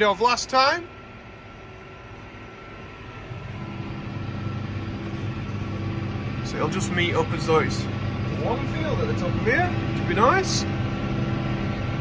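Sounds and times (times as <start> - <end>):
tractor engine running: 2.0 - 12.0.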